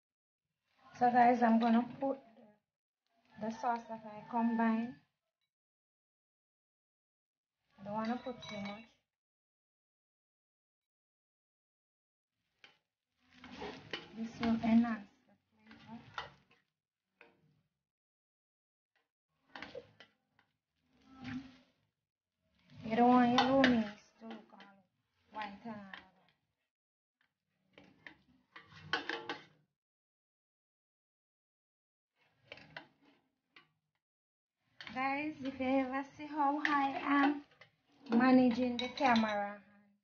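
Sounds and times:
spoon stirring noodles in pot: 12.5s - 14.9s, 15.7s - 16.7s, 22.6s - 24.6s, 27.7s - 29.5s.

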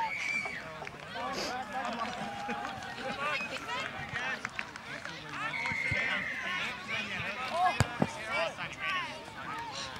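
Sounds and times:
voices calling out and chattering: 0.0s - 9.9s.

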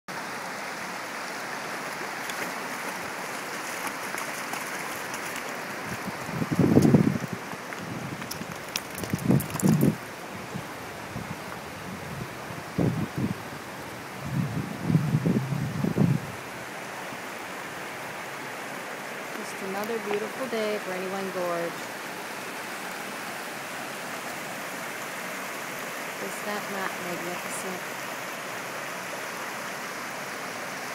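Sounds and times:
creek running over rocks: 0.1s - 30.9s.

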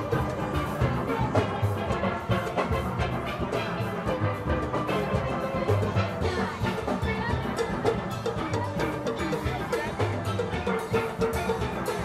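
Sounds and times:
steel band playing: 0.0s - 12.0s.

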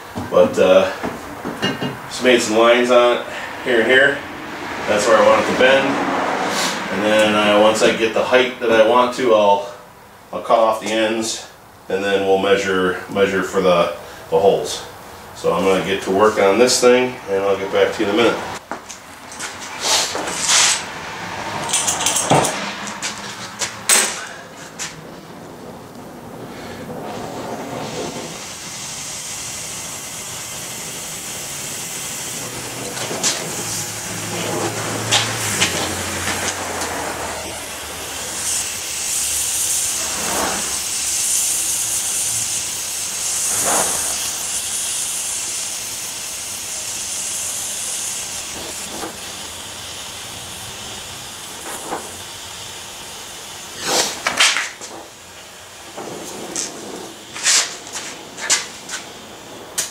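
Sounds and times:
torch flame hissing: 0.0s - 59.9s.

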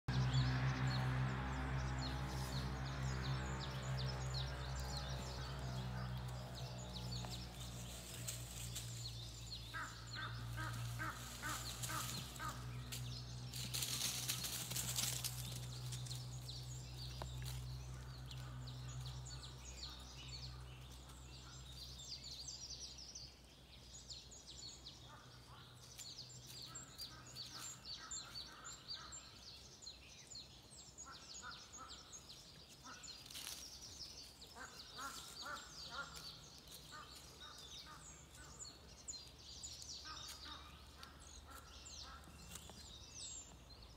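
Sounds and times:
birds chirping: 0.0s - 43.9s.

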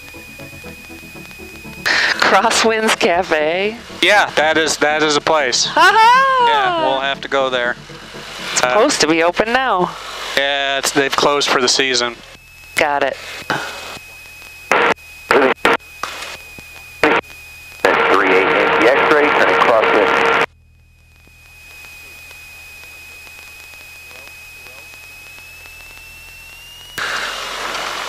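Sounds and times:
garbled radio transmission: 0.0s - 26.9s
aircraft engine hum: 0.0s - 28.0s
thin high whine: 0.0s - 28.0s.

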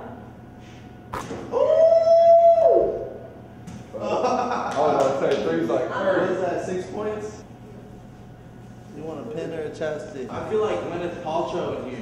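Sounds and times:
sharp knock: 1.1s - 1.5s
people talking: 9.0s - 12.0s.

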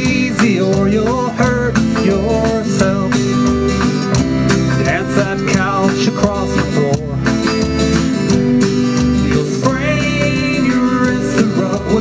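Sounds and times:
country-rock band playing: 0.0s - 12.0s
fiddle melody with sliding notes: 0.0s - 12.0s.

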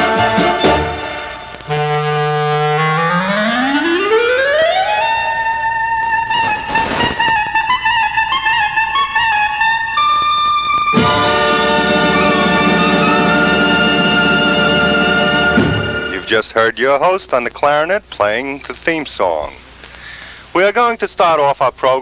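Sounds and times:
full band playing: 0.0s - 1.4s, 10.9s - 16.4s
solo clarinet glissando: 0.0s - 16.3s.

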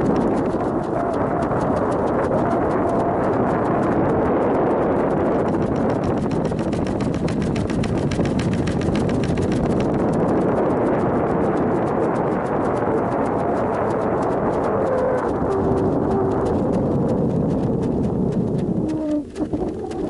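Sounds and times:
rushing noise with clicking: 0.0s - 20.0s.

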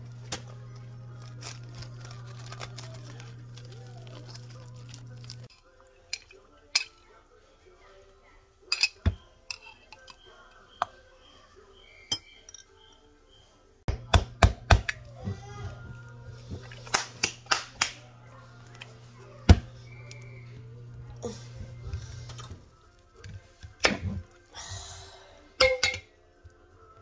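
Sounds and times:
utensil clinking on glass jar: 8.7s - 10.9s
steady low hum: 13.9s - 22.8s.

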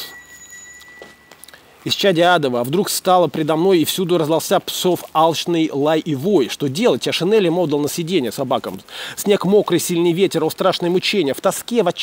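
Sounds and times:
man speaking: 0.0s - 0.2s, 1.8s - 12.0s
steady high-pitched tone: 0.0s - 2.1s
outdoor background hush: 0.0s - 12.0s.

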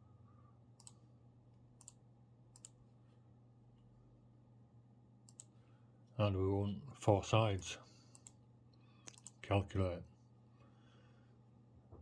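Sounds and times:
low steady hum: 0.0s - 12.0s
computer mouse clicks: 0.8s - 1.0s, 1.8s - 2.8s, 5.2s - 5.6s, 8.1s - 8.4s, 9.0s - 9.4s.

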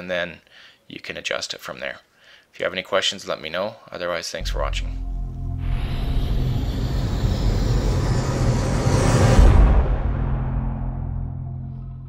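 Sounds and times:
heavy hit: 4.4s - 11.8s
low drone: 4.4s - 12.0s
rumbling whoosh: 4.4s - 12.0s.

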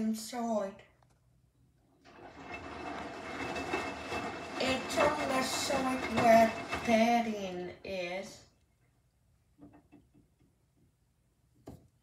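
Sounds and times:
laundry sloshing and tumbling: 2.0s - 7.6s
washing machine motor rumble: 2.0s - 8.3s.

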